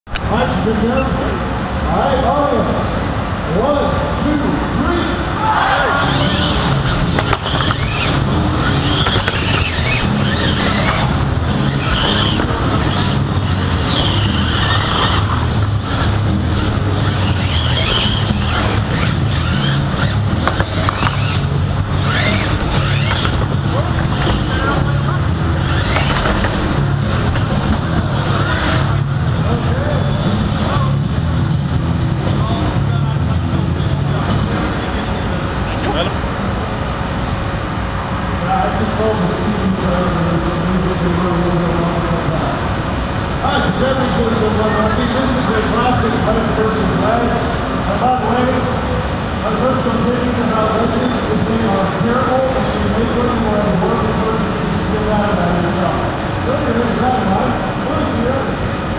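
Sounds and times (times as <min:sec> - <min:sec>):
crowd shouting: 0:05.2 - 0:07.2
electric motor drone: 0:05.9 - 0:30.9.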